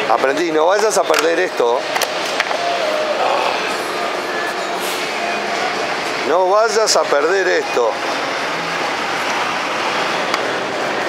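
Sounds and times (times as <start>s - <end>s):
street background noise: 0.0s - 11.0s
faint voices: 2.5s - 11.0s.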